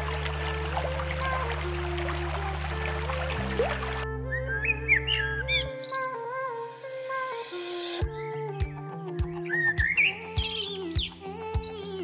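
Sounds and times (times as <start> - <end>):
running water: 0.0 - 4.1
blackbird singing: 4.3 - 6.3, 9.4 - 11.8
background music with bass line: 6.8 - 12.0.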